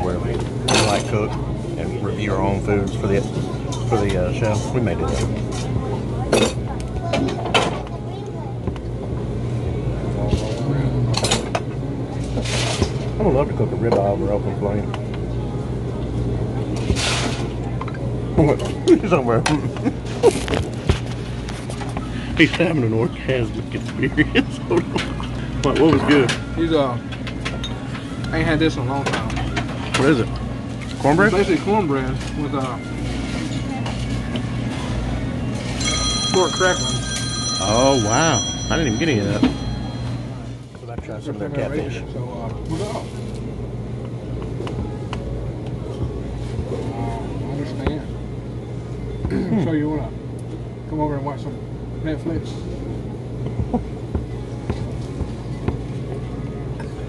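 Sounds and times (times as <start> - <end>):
background chatter: 0.0 - 57.0
steady low hum: 0.0 - 57.0
high electronic ringing: 35.8 - 40.6.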